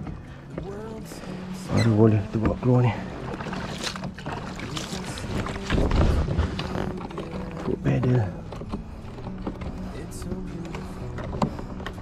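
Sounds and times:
faint water and hull noise: 0.0 - 12.0
man talking: 1.7 - 3.1, 7.7 - 8.4.

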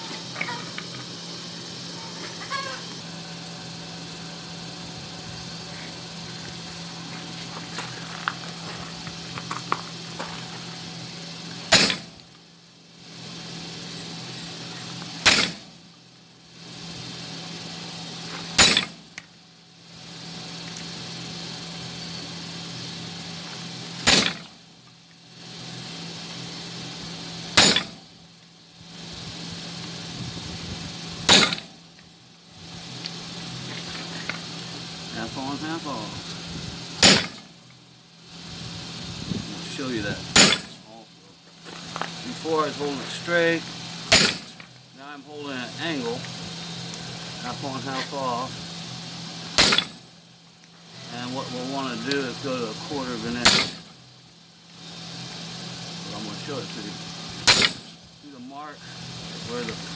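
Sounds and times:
steady low hum: 0.0 - 59.9
hammer clanging on steel: 11.7 - 12.2, 15.3 - 15.7, 18.6 - 19.0, 24.1 - 24.5, 27.6 - 28.0, 31.3 - 31.7, 37.0 - 37.5, 40.4 - 40.8, 44.1 - 44.6, 49.6 - 50.0, 53.4 - 53.9, 57.5 - 58.0.

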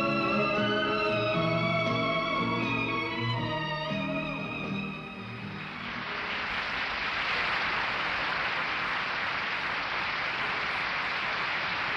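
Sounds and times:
orchestral music: 0.0 - 6.5
audience applauding: 5.4 - 11.9.

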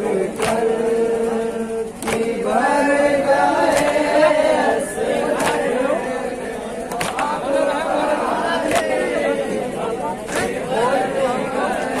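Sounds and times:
men chanting a lament: 0.0 - 12.0
chest-beating slaps: 0.4 - 0.7, 2.0 - 2.4, 3.7 - 4.1, 5.4 - 5.7, 6.9 - 7.4, 10.3 - 10.6.

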